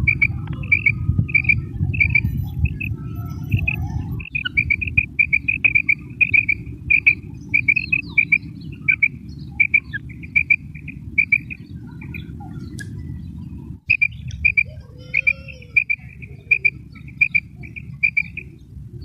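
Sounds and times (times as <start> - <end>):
quail calling: 0.0 - 12.8, 13.9 - 18.6
steady low rumble: 0.0 - 19.0.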